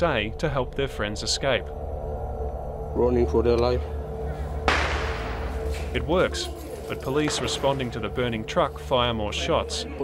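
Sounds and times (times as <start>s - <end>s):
low musical drone: 0.0s - 10.0s.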